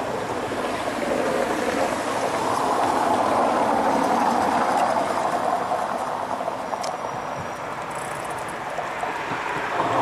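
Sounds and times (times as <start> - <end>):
tram rumbling over track: 0.0 - 10.0.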